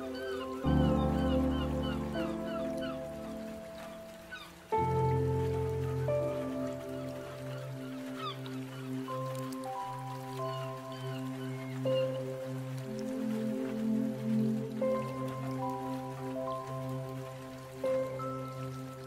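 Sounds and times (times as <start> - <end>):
calm ambient music chords: 0.0 - 19.0
light rain: 0.0 - 19.0
seagull cries: 0.1 - 4.6.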